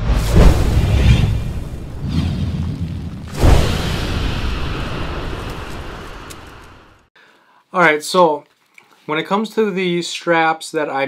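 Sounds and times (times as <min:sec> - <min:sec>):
deep boom rumble with hiss: 0:00.0 - 0:07.0.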